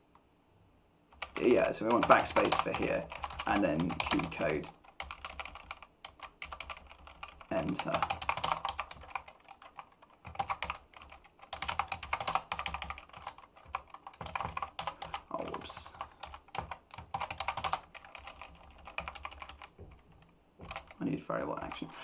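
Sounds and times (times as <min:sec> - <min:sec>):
typing on computer keyboard: 0:01.1 - 0:21.0.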